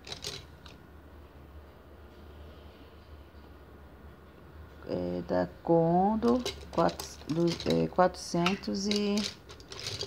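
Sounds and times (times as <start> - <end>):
wooden paintbrushes clicking: 6.3 - 10.0.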